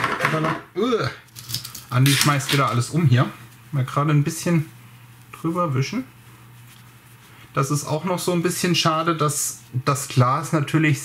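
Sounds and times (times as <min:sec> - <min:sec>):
man speaking: 0:01.9 - 0:06.2, 0:07.6 - 0:11.0.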